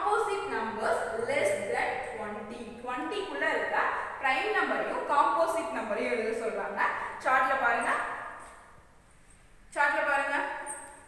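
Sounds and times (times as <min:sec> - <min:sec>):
woman speaking: 0:00.0 - 0:08.2, 0:09.7 - 0:10.9.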